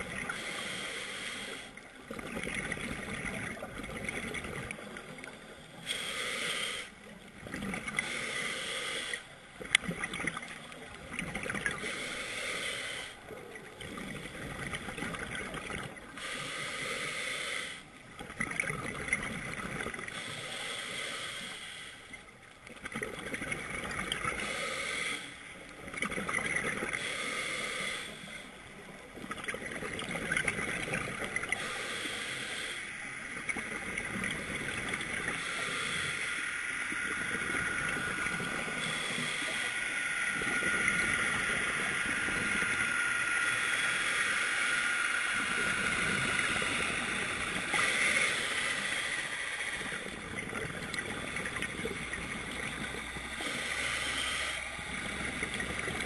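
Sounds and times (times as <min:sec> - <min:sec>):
underwater regulator breathing: 0:00.0 - 0:56.0
exhaled bubbles underwater: 0:02.0 - 0:05.6, 0:09.6 - 0:11.8, 0:13.5 - 0:16.1, 0:18.1 - 0:20.1, 0:29.1 - 0:31.6, 0:33.3 - 0:35.4, 0:49.8 - 0:53.8.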